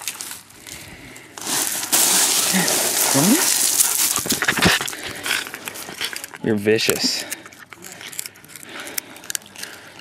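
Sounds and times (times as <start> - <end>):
puppy chewing on wooden stick: 3.5 - 10.0.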